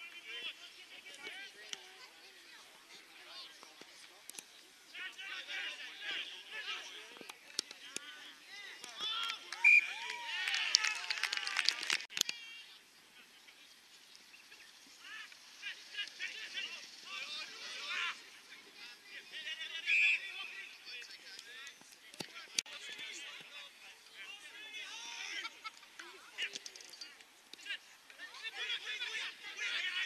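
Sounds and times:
whistle blast: 9.6 - 10.0.

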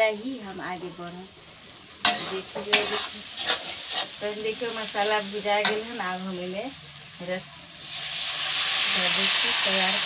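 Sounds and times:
gravy sizzling: 0.0 - 10.0
spatula scraping metal pan: 2.0 - 4.3.

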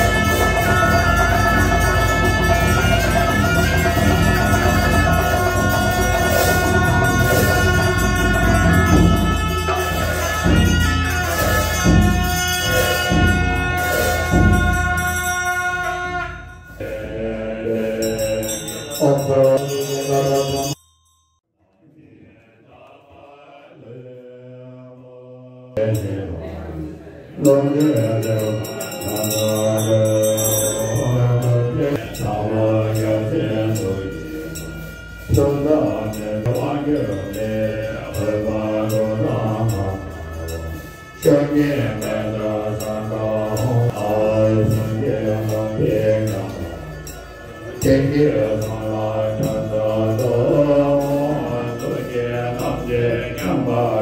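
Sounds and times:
loud noisy passage: 0.0 - 20.7
low voice chanting: 0.0 - 20.8, 21.6 - 54.0.

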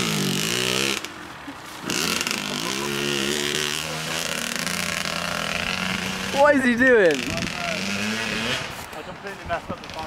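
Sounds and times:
distant dirt bike engine: 0.0 - 10.0
voices: 5.7 - 10.0.

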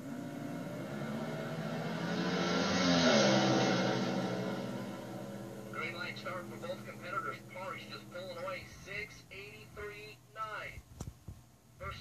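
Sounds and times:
dragster engines accelerating: 0.0 - 9.9.

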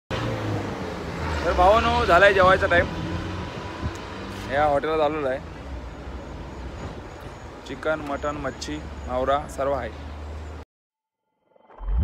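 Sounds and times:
low outdoor background noise: 0.2 - 10.6.

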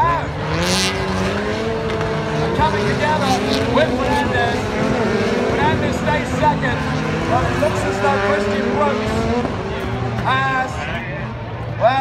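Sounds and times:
crowd voices: 0.0 - 12.0
race car engines: 0.0 - 12.0
public-address speaker: 2.2 - 12.0.

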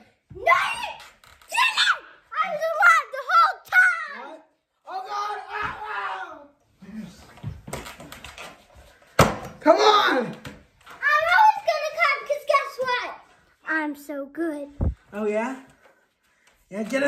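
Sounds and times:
young voices yelling and screaming: 0.0 - 6.7, 9.7 - 13.2.

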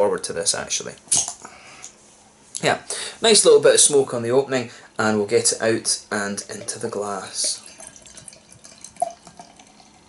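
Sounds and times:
carbonation hissing: 6.1 - 10.0.

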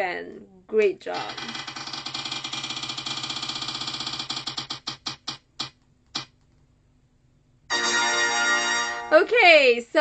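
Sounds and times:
prize wheel rapid ticks: 1.2 - 6.3.

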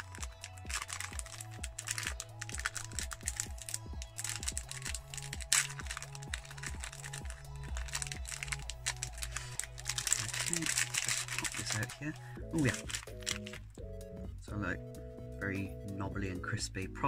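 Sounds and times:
plastic wrapper crinkling: 0.0 - 13.7
background music with bass line: 0.0 - 17.0.

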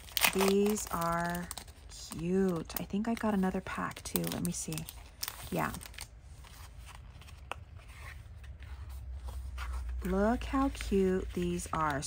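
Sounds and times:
low steady hum: 0.0 - 12.0
paper and plastic bag rustling: 0.0 - 12.0.

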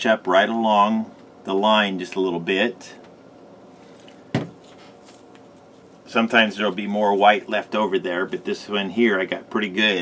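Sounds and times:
plastic bottle knocking on table: 4.3 - 4.6.

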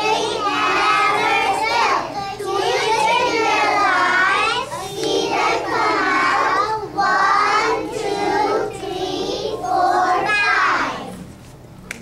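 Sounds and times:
young children singing: 0.0 - 11.2.

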